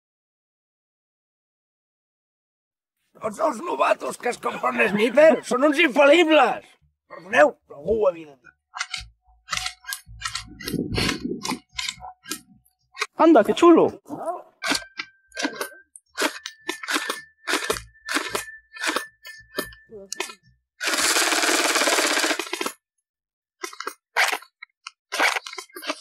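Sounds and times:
airsoft rifle shots: 0:20.8 - 0:22.6
rapid airsoft burst: 0:20.8 - 0:22.7.

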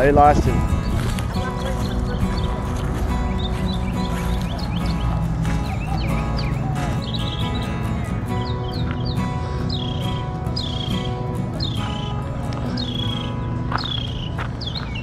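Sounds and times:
background music: 0:00.0 - 0:15.0
wind buffeting microphone: 0:00.0 - 0:15.0
high downward bird chirps: 0:00.7 - 0:15.0.

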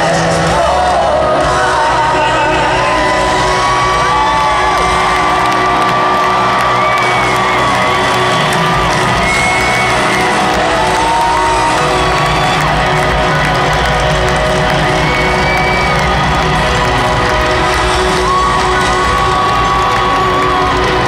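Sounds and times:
crowd cheering and whooping: 0:00.0 - 0:21.0
live rock band playing: 0:00.0 - 0:21.0.

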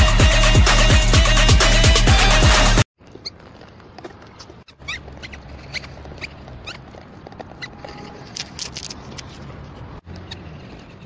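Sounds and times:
electronic dance music: 0:00.0 - 0:02.8
high animal squeaks: 0:04.3 - 0:08.3.

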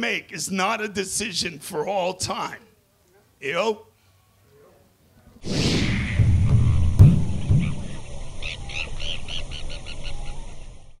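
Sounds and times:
low thud: 0:05.5 - 0:08.4.

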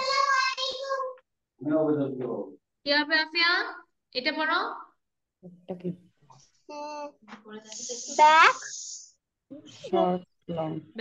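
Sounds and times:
child's sing-song voice: 0:00.0 - 0:01.2
person speaking: 0:06.7 - 0:11.0.

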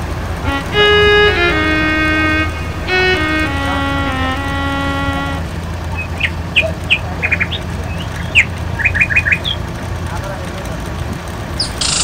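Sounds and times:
held keyboard note: 0:00.0 - 0:05.8
vehicle hum: 0:00.0 - 0:10.1.

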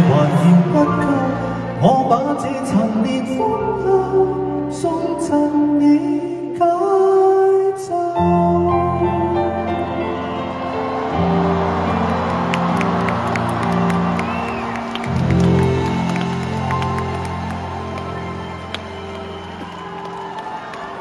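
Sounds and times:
crowd cheering and applauding: 0:00.0 - 0:02.2, 0:09.4 - 0:21.0
string ensemble playing chords: 0:00.0 - 0:06.4, 0:08.2 - 0:21.0
whistles from crowd: 0:10.3 - 0:21.0.

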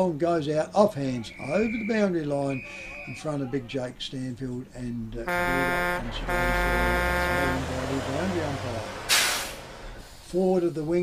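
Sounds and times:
low engine rumble: 0:05.0 - 0:11.0
vehicle horn blasts: 0:05.3 - 0:09.1
loud hiss of air: 0:08.9 - 0:10.4.

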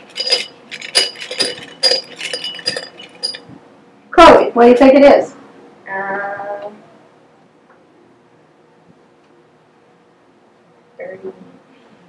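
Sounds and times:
light clinks of small objects: 0:00.0 - 0:03.5.

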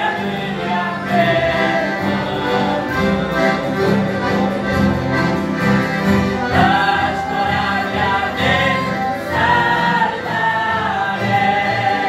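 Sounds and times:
choir singing a hymn: 0:00.0 - 0:12.0
piano accordions: 0:00.0 - 0:12.0.

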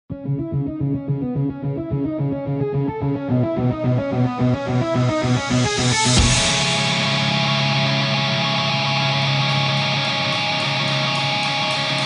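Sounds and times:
guitar plucked notes run: 0:00.1 - 0:12.0.

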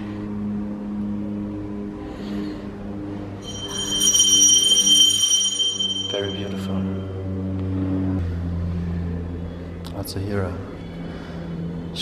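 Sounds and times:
low hum: 0:00.0 - 0:12.0
temple bell ringing: 0:03.4 - 0:07.4.

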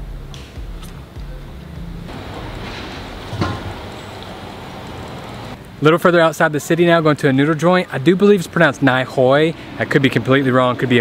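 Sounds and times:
street traffic: 0:00.8 - 0:05.9, 0:06.7 - 0:11.0.

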